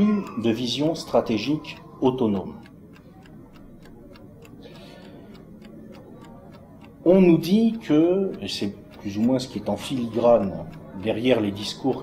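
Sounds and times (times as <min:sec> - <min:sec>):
chess clock ticking: 0:00.0 - 0:12.0.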